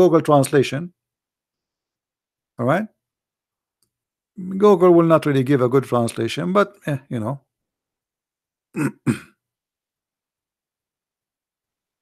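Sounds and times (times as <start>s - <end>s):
man clearing throat: 8.7s - 9.4s.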